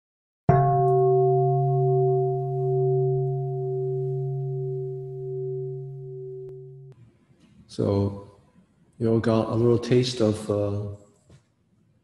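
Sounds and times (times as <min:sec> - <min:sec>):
singing bowl ringing: 0:00.5 - 0:07.0.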